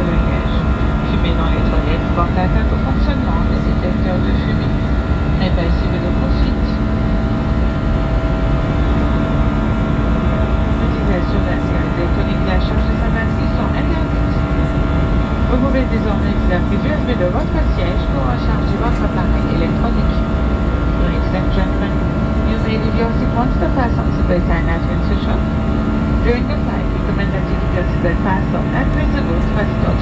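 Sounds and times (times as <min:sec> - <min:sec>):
airplane cabin engine rumble: 0:00.0 - 0:30.0
steady engine tones: 0:00.0 - 0:30.0.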